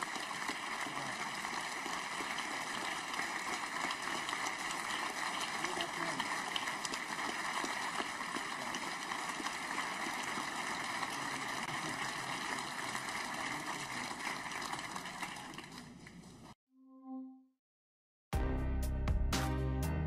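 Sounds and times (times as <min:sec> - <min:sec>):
large crowd applauding: 0:00.0 - 0:16.6.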